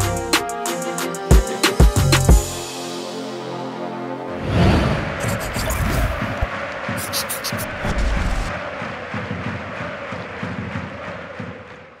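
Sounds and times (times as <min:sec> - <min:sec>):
football crowd chanting: 0:04.2 - 0:12.0.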